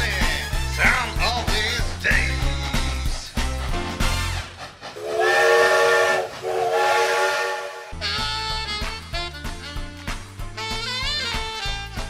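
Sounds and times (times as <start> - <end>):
steam hiss: 3.2 - 8.0
steam locomotive whistle: 4.0 - 8.9.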